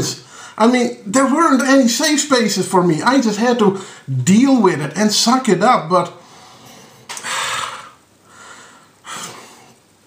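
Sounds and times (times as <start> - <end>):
man breathing out through nose: 6.2 - 9.8.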